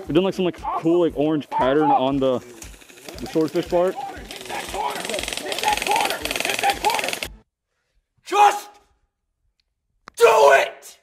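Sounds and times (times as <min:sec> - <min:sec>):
men talking: 0:00.0 - 0:07.4
man shouting: 0:00.5 - 0:02.2, 0:08.2 - 0:08.8, 0:10.2 - 0:11.0.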